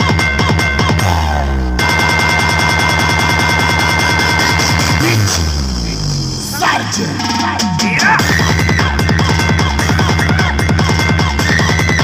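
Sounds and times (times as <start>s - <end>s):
bass-heavy electronic music: 0.0s - 12.0s.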